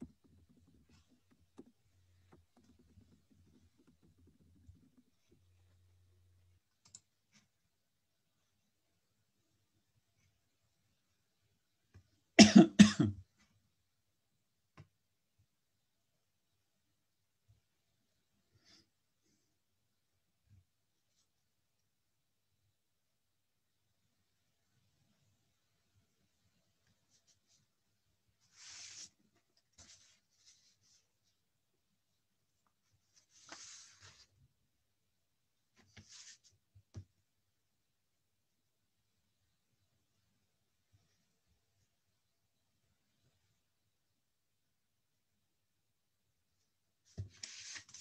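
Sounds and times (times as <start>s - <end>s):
soft clicks: 6.7s - 7.1s
person coughing: 12.4s - 13.2s.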